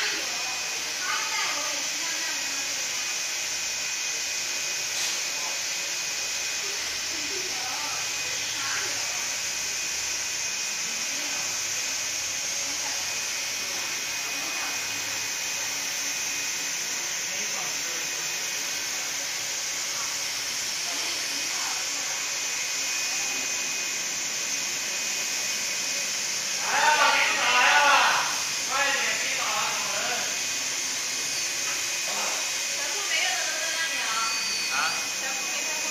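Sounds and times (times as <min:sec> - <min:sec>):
printer hissing with high whine: 0:00.0 - 0:35.9.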